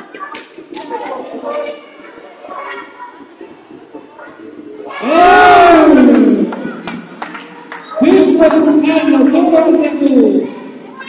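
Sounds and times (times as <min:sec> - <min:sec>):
person shouting in a large hall: 0:04.9 - 0:06.8.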